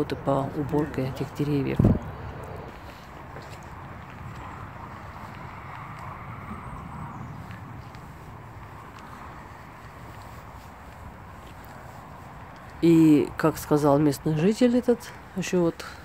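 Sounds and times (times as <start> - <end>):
wind rumble on microphone: 0.0 - 13.6.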